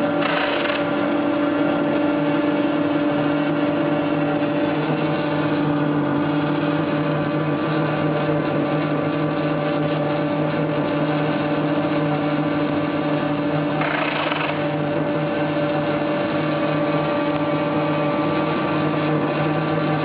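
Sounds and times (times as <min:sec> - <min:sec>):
machine humming with steady tones: 0:00.0 - 0:20.0.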